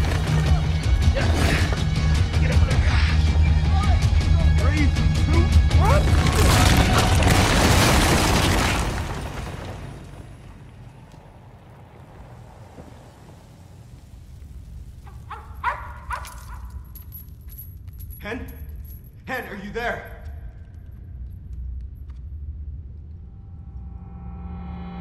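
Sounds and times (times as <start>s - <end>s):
concrete debris collapsing crash: 0.0s - 0.8s, 5.8s - 11.2s
small dog yapping: 15.2s - 16.8s.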